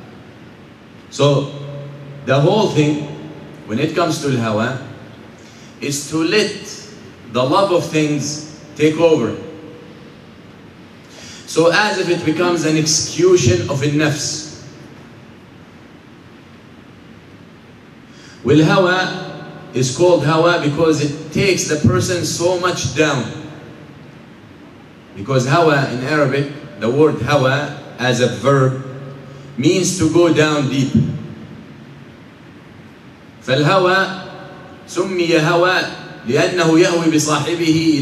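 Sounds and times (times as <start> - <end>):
background hiss: 0.0 - 38.0.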